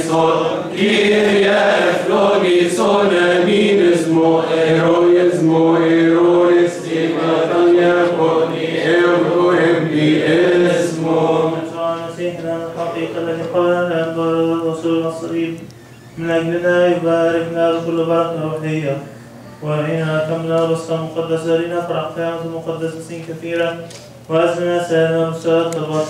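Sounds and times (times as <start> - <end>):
group of voices chanting: 0.0 - 11.6.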